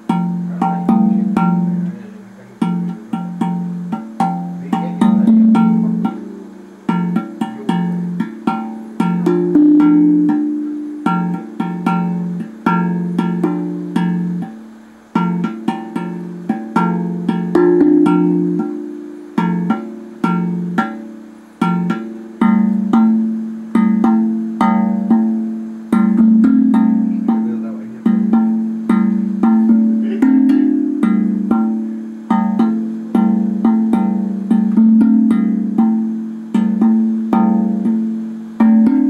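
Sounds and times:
steel tongue drum notes: 0.0 - 39.0.

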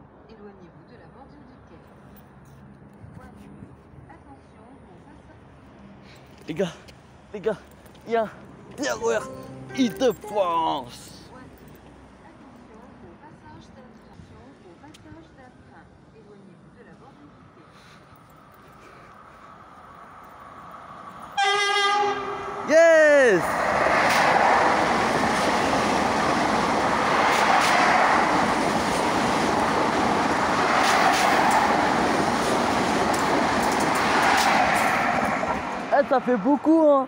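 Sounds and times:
train rumbling past: 17.7 - 36.9
train horn blasts: 21.4 - 22.7.

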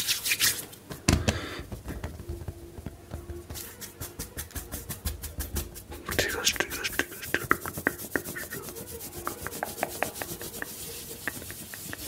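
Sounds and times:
hands rubbing and brushing: 0.0 - 12.0.

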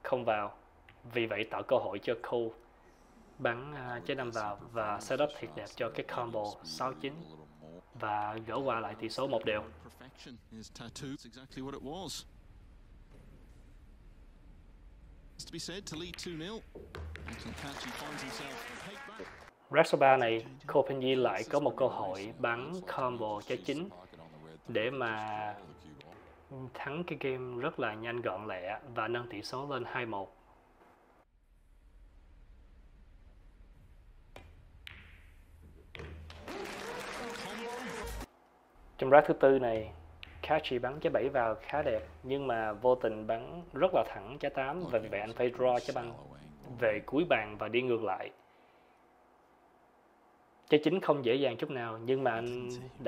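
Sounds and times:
commentator speaking: 3.4 - 12.2, 17.3 - 30.3, 39.0 - 48.3, 50.7 - 53.0
crowd applauding: 17.0 - 19.5, 36.3 - 38.3
cue tip striking ball: 34.3 - 36.6, 39.7 - 42.2.

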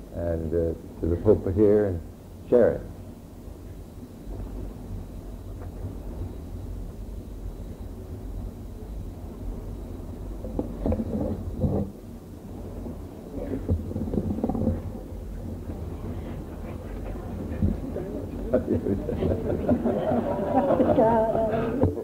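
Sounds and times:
cassette recording rumble and hum: 0.0 - 22.0
microphone handling bumps: 10.3 - 18.5.

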